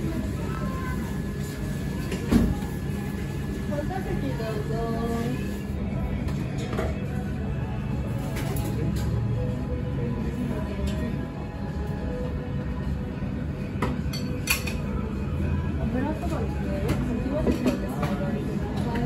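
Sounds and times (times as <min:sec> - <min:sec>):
background music: 0:03.1 - 0:19.0.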